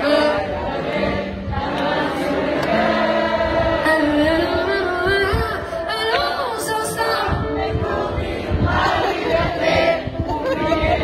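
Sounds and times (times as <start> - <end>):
crowd singing together: 0.0 - 11.0.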